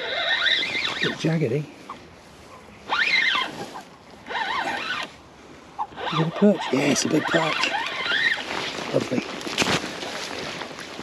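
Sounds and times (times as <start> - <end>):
fishing reel gears whirring: 0.0 - 1.2, 2.9 - 3.5, 4.2 - 5.1.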